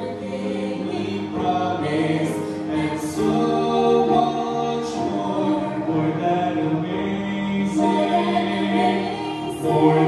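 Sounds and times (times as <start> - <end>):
man and woman singing gospel: 0.0 - 10.0.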